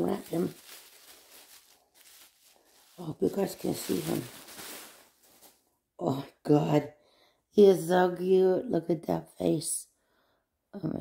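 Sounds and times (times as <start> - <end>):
tissue paper rustling: 0.0 - 5.7.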